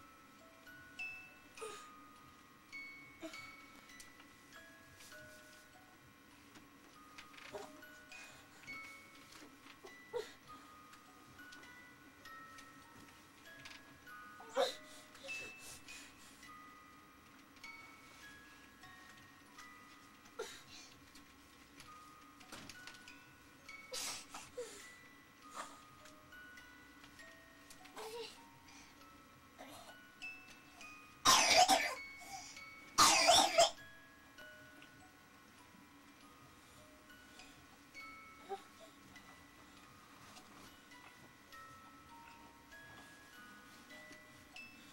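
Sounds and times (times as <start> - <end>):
tinkling music box melody: 0.0 - 44.9
young child coughing: 31.3 - 32.0, 33.0 - 33.8.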